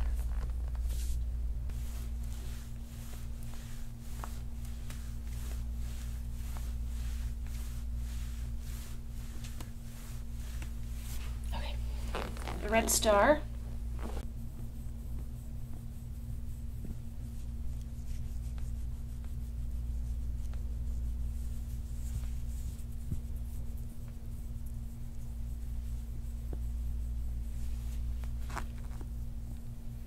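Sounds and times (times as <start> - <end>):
low steady hum: 0.0 - 30.0
plastic rubbing on skin: 0.0 - 30.0.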